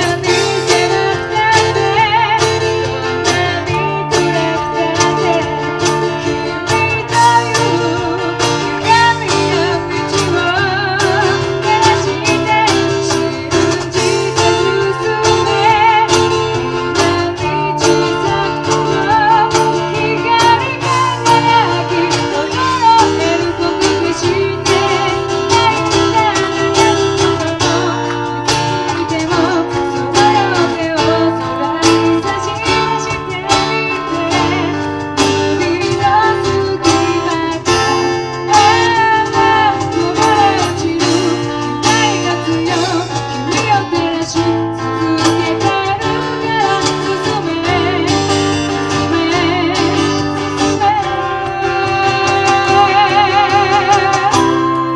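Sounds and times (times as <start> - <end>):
cajon beats: 0.0 - 54.9
electric guitar: 0.0 - 54.9
strummed acoustic guitar: 0.0 - 54.9
woman singing: 0.0 - 54.9.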